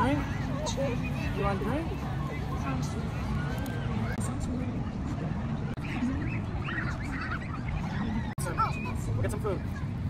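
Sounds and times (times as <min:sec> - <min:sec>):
outdoor background noise: 0:00.0 - 0:10.0
farm birds calling: 0:05.8 - 0:08.9.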